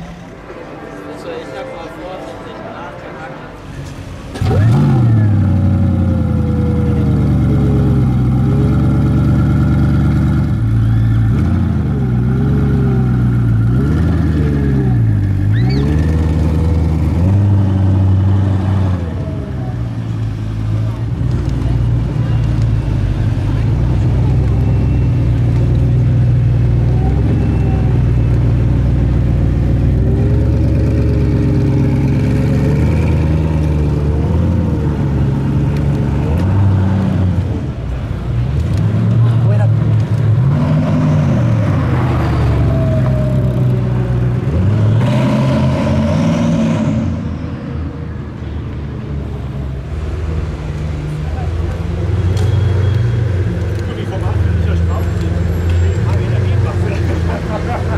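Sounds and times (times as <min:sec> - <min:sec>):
car engine revving: 0:03.9 - 0:27.7, 0:28.8 - 0:47.9.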